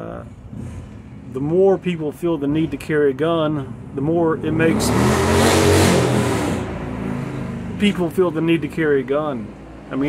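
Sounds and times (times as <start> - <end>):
vehicle driving past: 4.4 - 7.9.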